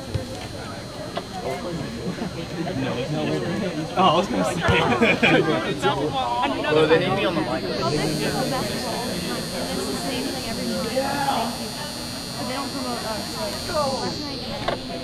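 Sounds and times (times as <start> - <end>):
high-pitched whine: 0.0 - 15.0
spectators chattering: 0.0 - 15.0.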